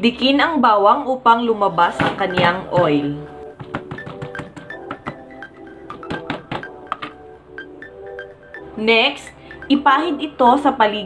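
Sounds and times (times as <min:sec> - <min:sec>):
background music with melody: 0:00.0 - 0:11.0
knife knocking on cutting board: 0:03.6 - 0:05.2, 0:06.0 - 0:07.1.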